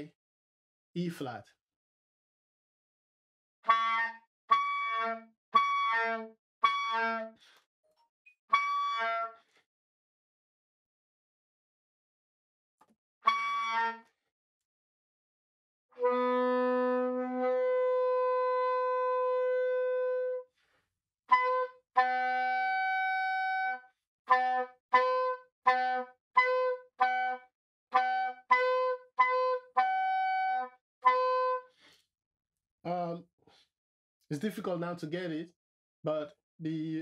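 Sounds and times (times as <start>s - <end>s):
soprano saxophone notes: 16.0s - 20.4s.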